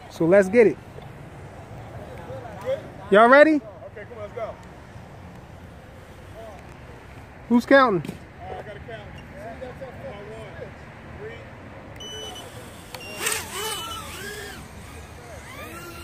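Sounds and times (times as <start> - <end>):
distant voices talking: 0.0 - 16.0.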